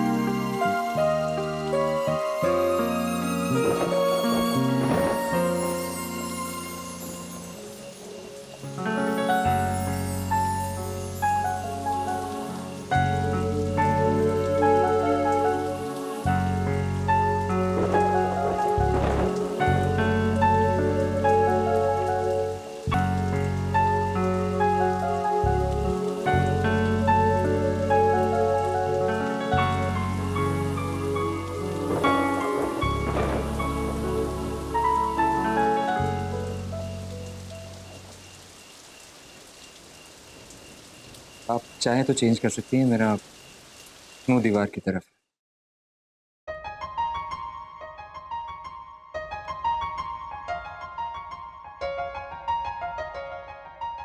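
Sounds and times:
slow keyboard background music: 0.0s - 38.8s, 46.5s - 54.0s
steady rain falling: 0.0s - 45.0s
grainy rustle: 15.7s - 20.4s.

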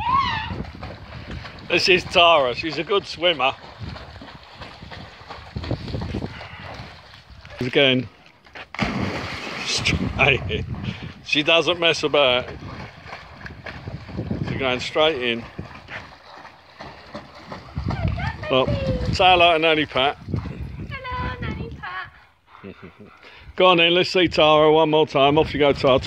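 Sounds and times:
water splashing and sloshing: 0.0s - 21.8s.

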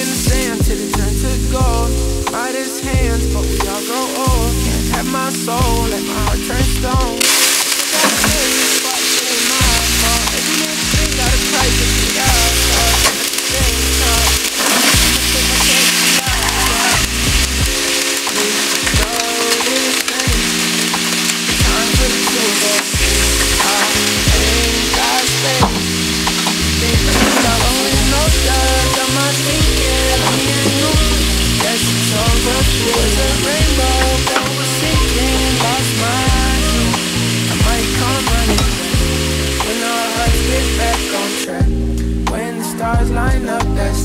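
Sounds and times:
hip hop music: 0.0s - 44.0s
chicken sizzling in hot oil: 7.2s - 41.5s.

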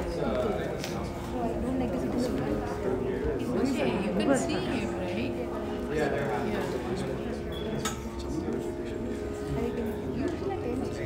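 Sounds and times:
indistinct talking: 0.0s - 11.0s
steady drone: 0.0s - 11.0s.

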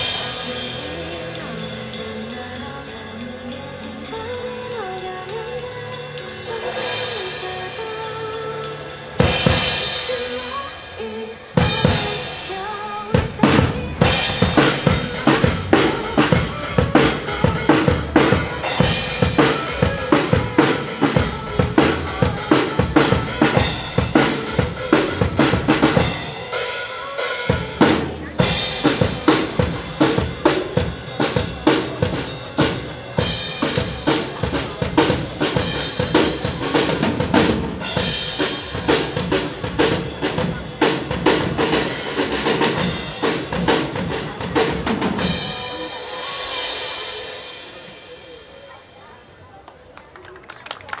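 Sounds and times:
backing track music: 0.0s - 48.3s
drum kit kick and snare: 13.2s - 26.5s.

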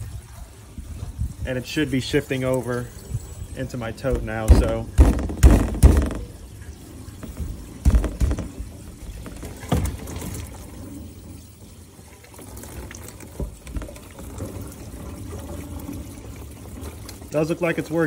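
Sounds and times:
water flowing through pipe: 0.0s - 18.0s
dull knocks: 4.1s - 6.4s, 7.2s - 10.0s.

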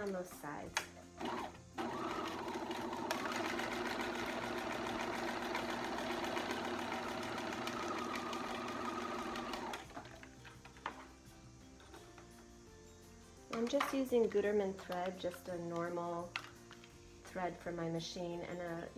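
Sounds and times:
sewing machine stitching: 1.2s - 10.2s.

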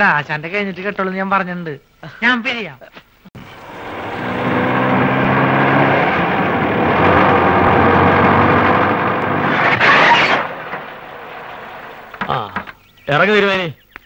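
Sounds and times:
car engine hum: 3.4s - 13.0s
tyre noise on dirt road: 3.4s - 13.3s.

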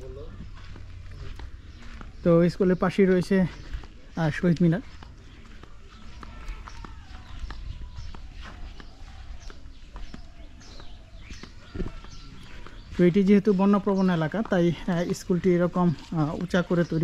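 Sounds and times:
footsteps on grass and earth: 0.0s - 17.0s.

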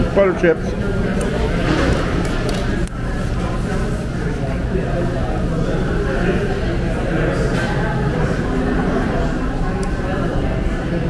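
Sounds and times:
murmur of diners' voices: 0.0s - 11.0s.

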